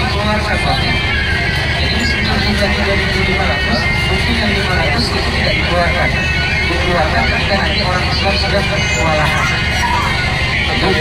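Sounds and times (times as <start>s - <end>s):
bus engine rumble: 0.0s - 11.0s
man talking: 10.7s - 11.0s.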